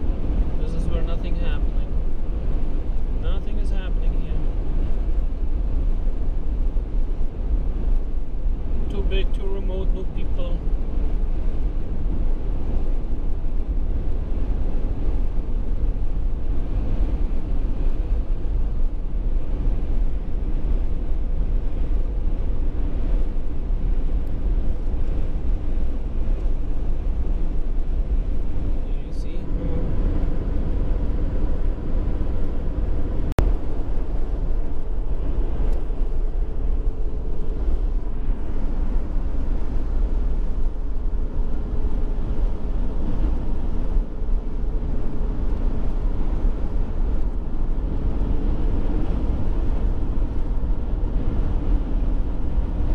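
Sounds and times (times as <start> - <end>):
car engine and tyres rumbling: 0.0 - 52.9.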